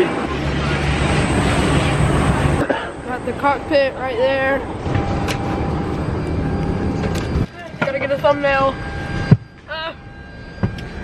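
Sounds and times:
airliner cabin hum: 0.0s - 11.0s.

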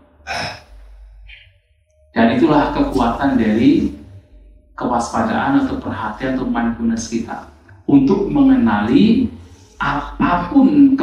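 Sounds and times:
breath into microphone: 9.4s - 9.8s.

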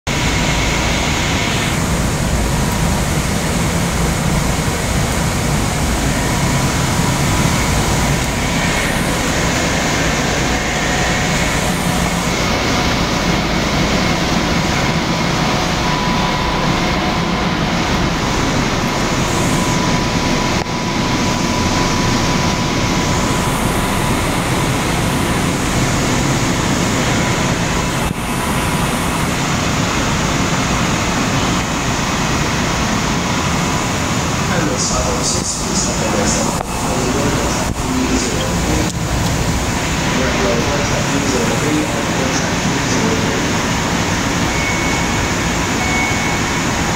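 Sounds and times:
electric train humming: 0.1s - 46.9s
faint steady whine: 0.1s - 46.9s.

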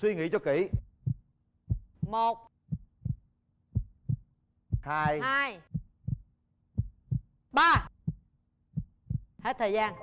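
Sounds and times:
heartbeat thumps: 0.5s - 9.4s.

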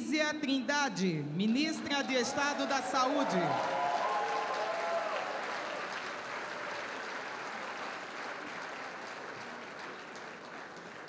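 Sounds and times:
audience applauding: 2.2s - 11.0s.

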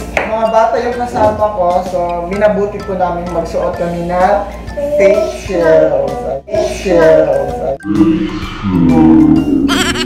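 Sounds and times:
background music: 0.0s - 10.0s
comic goat bleating effect: 9.6s - 10.0s.

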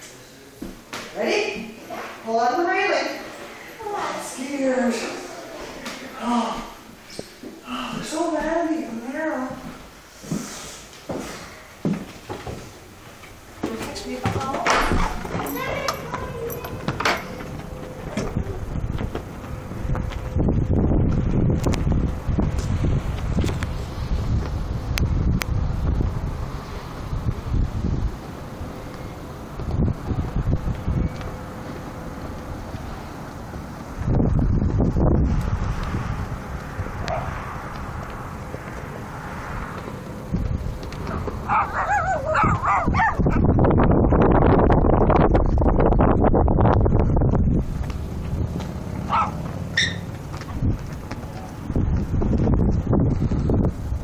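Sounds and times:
wind buffeting microphone: 13.4s - 54.0s
heavy door opening: 13.6s - 20.0s
dog whining: 41.5s - 43.3s, 49.1s - 50.0s.

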